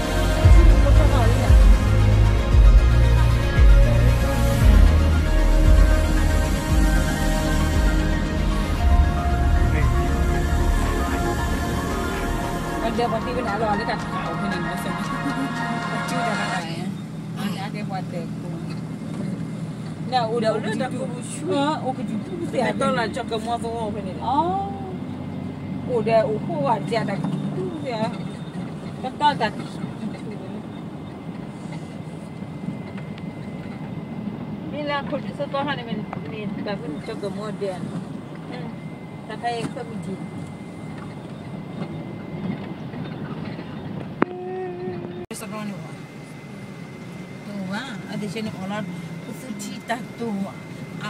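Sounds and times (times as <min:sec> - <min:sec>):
people talking: 0:00.0 - 0:01.8, 0:09.5 - 0:10.2, 0:10.8 - 0:25.1, 0:25.8 - 0:30.8, 0:34.7 - 0:40.6, 0:44.2 - 0:46.2, 0:47.4 - 0:51.0
steady pitched tone: 0:00.0 - 0:17.4
vehicle engine and road noise: 0:00.0 - 0:51.0.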